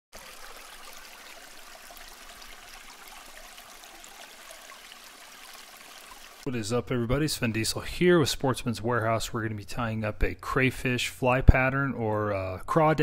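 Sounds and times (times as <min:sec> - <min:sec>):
running water rushing: 0:00.1 - 0:06.5.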